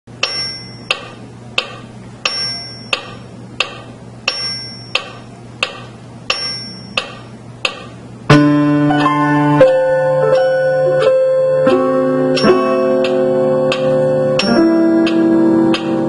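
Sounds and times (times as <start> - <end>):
metronome clicking: 0.2 - 7.9, 8.9 - 16.0
piano playing: 8.2 - 16.0.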